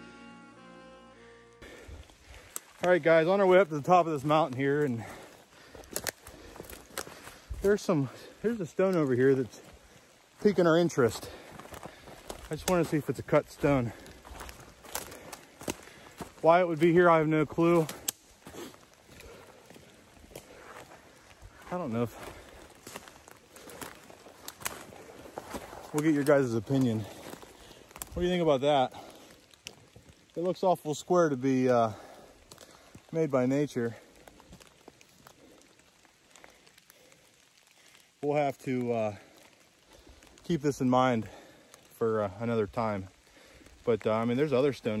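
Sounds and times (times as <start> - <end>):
footsteps on forest floor: 1.6 - 45.0
rustling on forest floor: 1.6 - 45.0.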